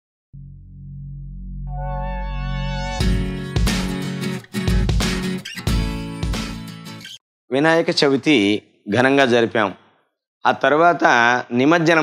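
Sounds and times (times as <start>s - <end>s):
low synth drone: 0.4s - 3.0s.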